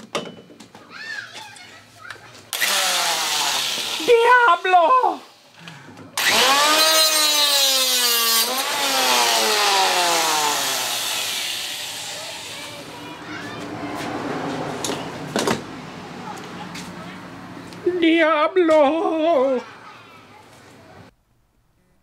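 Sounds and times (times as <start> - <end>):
angle grinder cutting steel cable: 2.5 - 4.7, 6.2 - 13.0.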